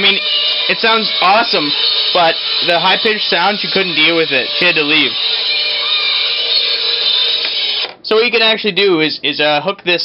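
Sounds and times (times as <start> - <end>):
high-pitched buzzing distorted song: 0.0 - 8.0.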